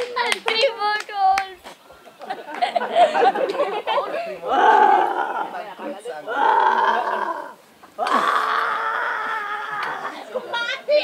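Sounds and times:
hand claps: 0.0s - 2.8s
voices calling: 0.0s - 11.0s
people laughing: 1.9s - 5.7s, 9.2s - 11.0s.

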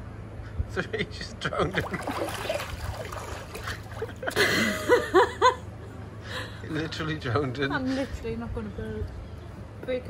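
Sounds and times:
pool water splashing and lapping: 1.5s - 5.4s
woman laughing: 4.0s - 5.7s.

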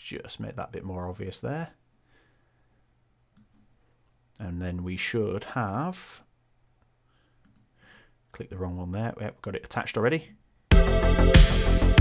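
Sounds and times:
computer mouse click: 3.4s - 3.7s, 7.4s - 7.9s.

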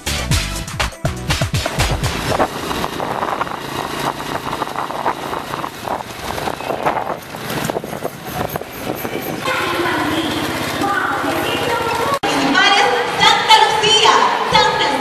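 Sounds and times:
road noise rumble and hiss: 1.7s - 12.5s
people's voices: 8.1s - 15.0s.

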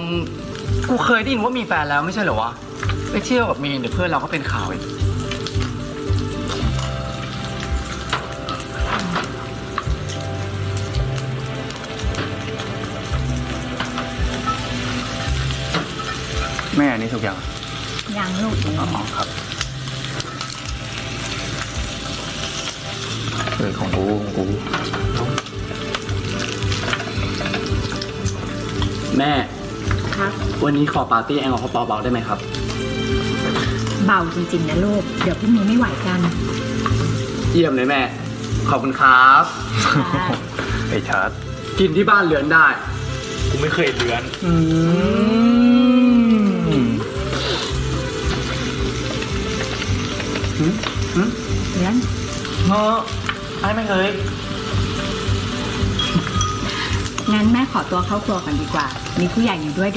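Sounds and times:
background music: 0.0s - 59.9s
food sizzling: 0.0s - 59.9s
person humming mmm: 44.4s - 48.0s, 50.4s - 51.6s.

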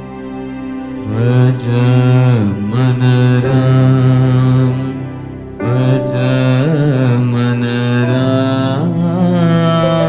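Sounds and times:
person singing long note: 1.0s - 10.0s.

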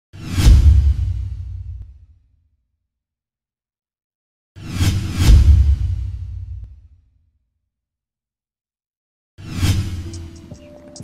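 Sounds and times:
whoosh: 0.2s - 1.9s
deep boom with low rumble: 0.4s - 2.1s, 5.2s - 6.9s.

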